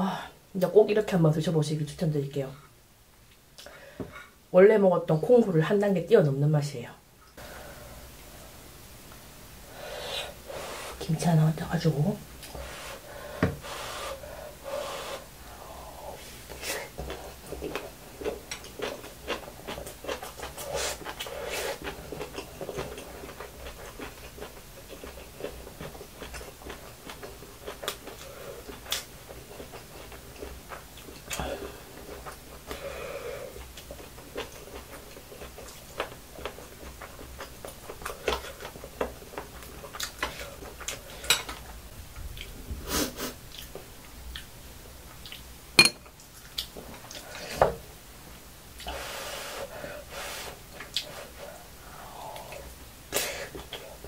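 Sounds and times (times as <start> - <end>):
close-up chewing: 16.9 - 32.8, 33.5 - 42.6, 45.1 - 45.5
metal spoon clinking on glass: 45.8 - 46.1.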